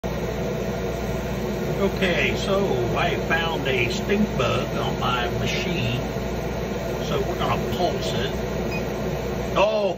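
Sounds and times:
laser engraver fans humming: 0:00.0 - 0:09.9.

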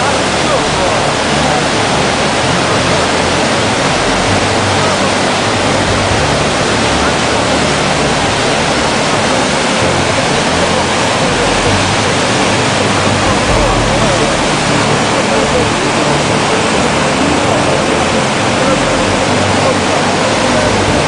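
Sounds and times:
floodwater rushing: 0:00.0 - 0:21.0.

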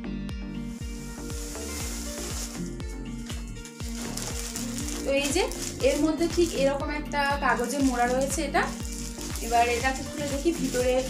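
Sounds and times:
background music with steady beat: 0:00.0 - 0:11.0
plastic wrapping crinkling: 0:00.8 - 0:06.8, 0:07.4 - 0:11.0.

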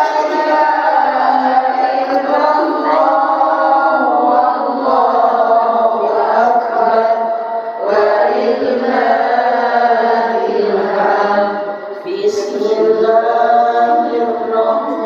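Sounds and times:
woman chanting into a microphone: 0:00.0 - 0:15.0.

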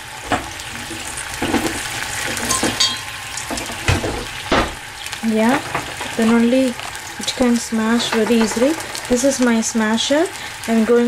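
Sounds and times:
garlic sizzling in a pan: 0:00.0 - 0:11.0.

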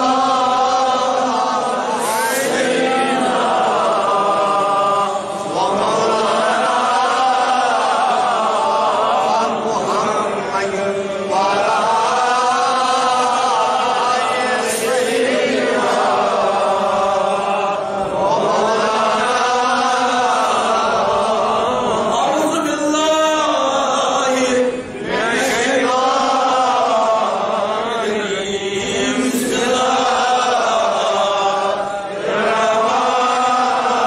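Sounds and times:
man chanting melodically: 0:00.0 - 0:34.0.

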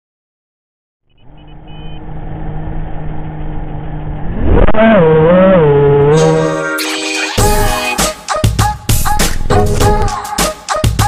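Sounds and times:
short high beeps: 0:01.1 - 0:02.0.

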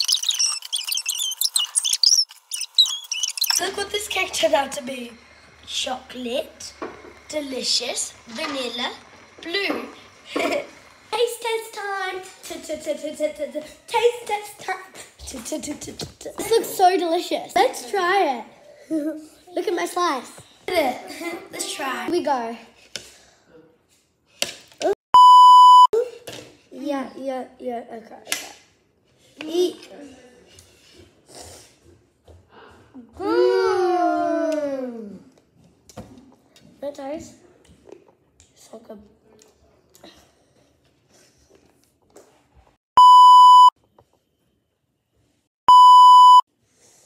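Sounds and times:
test-tone beeps: 0:25.2 - 0:25.9, 0:43.0 - 0:43.8, 0:45.7 - 0:46.4.

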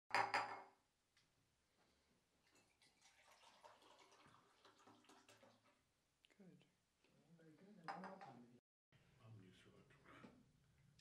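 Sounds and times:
water trickling between cups: 0:02.4 - 0:05.8.

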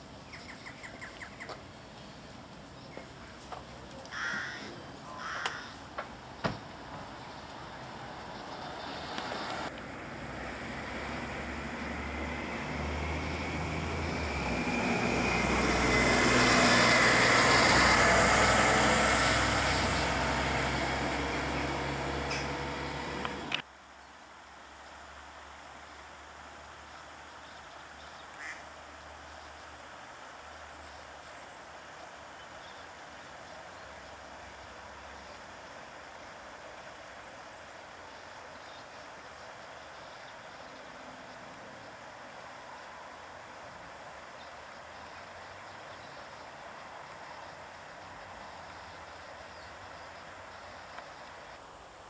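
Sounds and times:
outdoor background noise: 0:00.0 - 0:52.0
road vehicle passing by: 0:06.8 - 0:23.6.

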